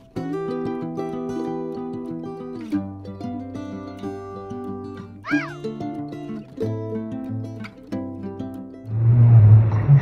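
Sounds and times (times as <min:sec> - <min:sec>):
plucked-string background music: 0:00.0 - 0:09.7.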